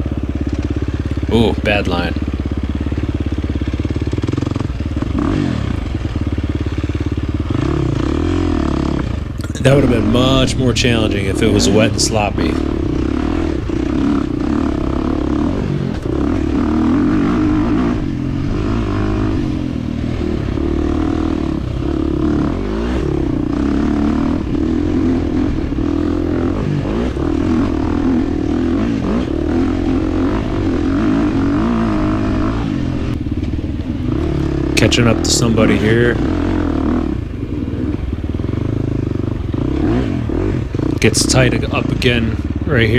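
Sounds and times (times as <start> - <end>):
dirt bike engine revving: 0.0 - 42.9.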